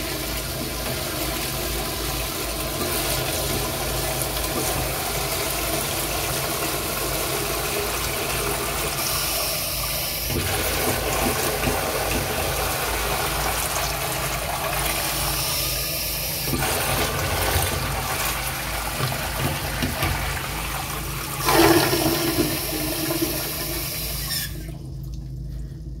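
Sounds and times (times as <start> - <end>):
toilet flushing: 0.0 - 26.0.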